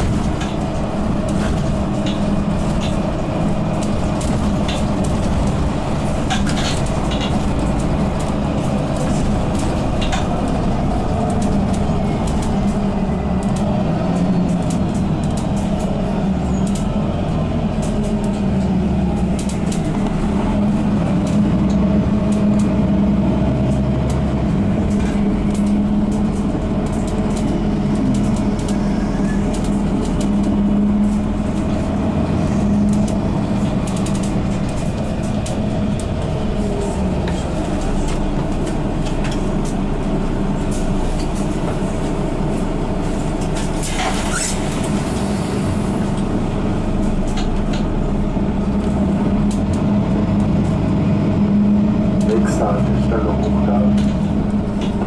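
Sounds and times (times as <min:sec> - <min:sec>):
bus engine drone: 0:00.0 - 0:55.0
road rumble: 0:00.0 - 0:55.0.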